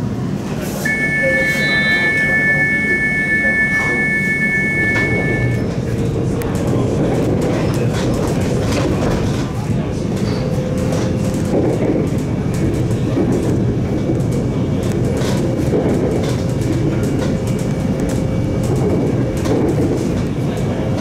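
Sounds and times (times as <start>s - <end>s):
train wheels rumbling on rail: 4.0s - 21.0s.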